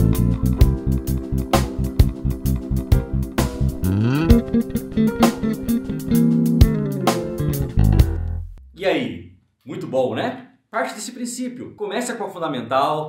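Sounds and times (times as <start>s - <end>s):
electric bass groove: 0.0s - 8.7s.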